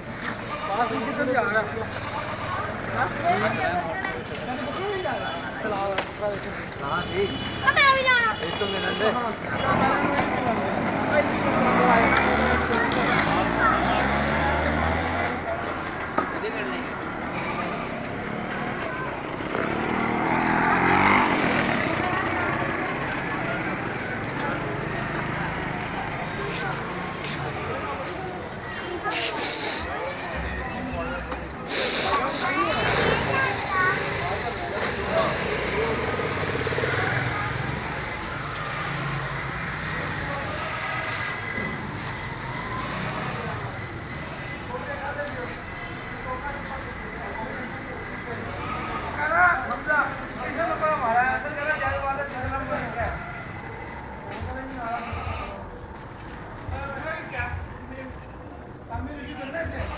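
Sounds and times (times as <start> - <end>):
outdoor ambience: 0.0 - 59.9
people's voices: 0.0 - 59.9.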